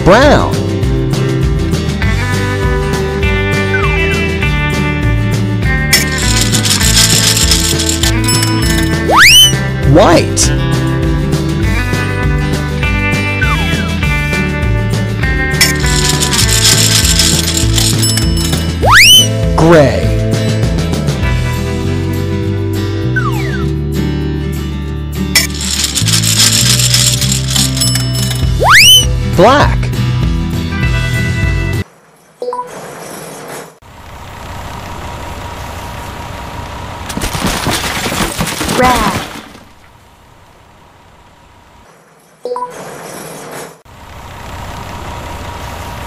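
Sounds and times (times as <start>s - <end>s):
gumball machine crank ratcheting: 6.0s - 8.9s, 15.6s - 18.6s, 25.4s - 28.4s
low engine rumble: 33.8s - 37.2s
bricks clattering: 37.1s - 39.8s
crash: 37.1s - 39.8s.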